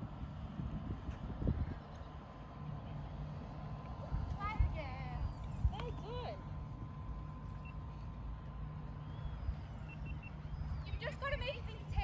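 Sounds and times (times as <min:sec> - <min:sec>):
steady low rumble: 0:00.0 - 0:12.0
faint steady tone: 0:01.8 - 0:12.0
faint high chirps: 0:08.9 - 0:11.2.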